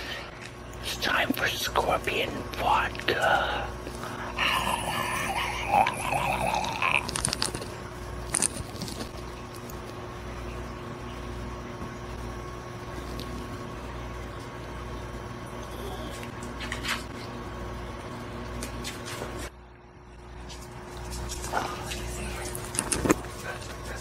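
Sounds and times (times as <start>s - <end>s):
electrical hum: 0.0s - 24.0s.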